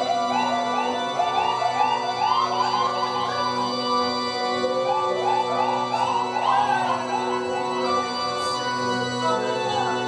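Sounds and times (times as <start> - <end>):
held keyboard chords: 0.0 - 10.0
high siren-like gliding figure: 0.0 - 10.0.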